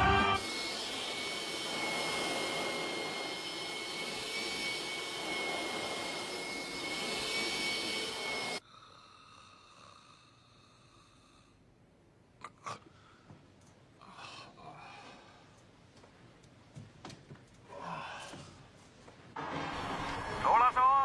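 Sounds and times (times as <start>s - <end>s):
vacuum cleaner running: 0.0s - 8.6s.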